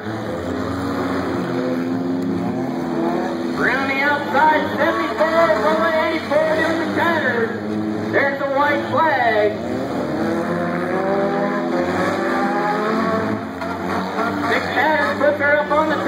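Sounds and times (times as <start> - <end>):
race car engines revving: 0.0 - 16.0
announcer calling a race: 1.5 - 16.0.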